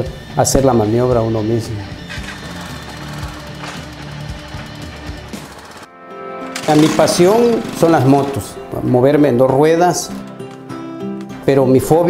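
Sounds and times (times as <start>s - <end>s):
background music: 0.0s - 12.0s
motorcycle engine idling: 2.0s - 5.9s.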